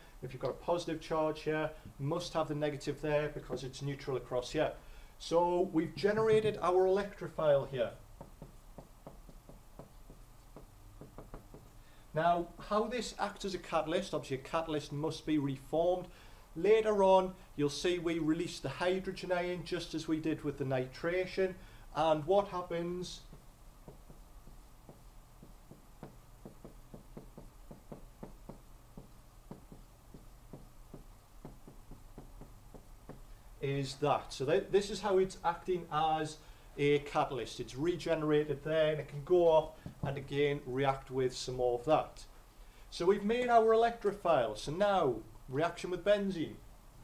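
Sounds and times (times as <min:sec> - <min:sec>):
marker pen writing on whiteboard: 0:08.2 - 0:11.8, 0:23.2 - 0:33.3.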